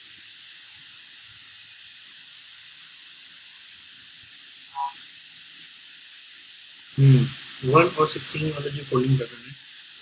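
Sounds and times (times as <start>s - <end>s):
faint background hiss: 0.0s - 10.0s
mouse-button clicks: 4.8s - 5.6s.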